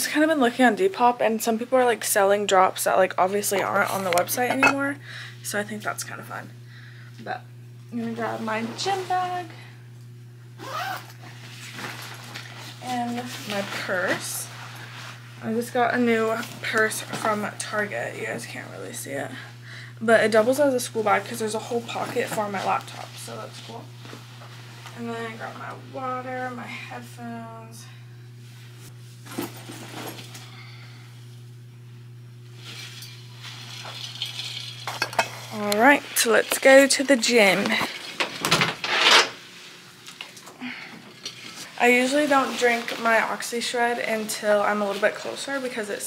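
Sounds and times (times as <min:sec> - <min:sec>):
steady low hum: 0:00.0 - 0:38.4
zipper-like rustling: 0:10.6 - 0:13.6.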